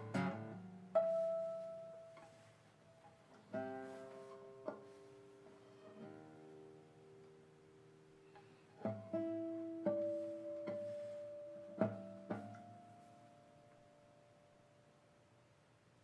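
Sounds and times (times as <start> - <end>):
classical guitar playing: 0.0 - 15.2.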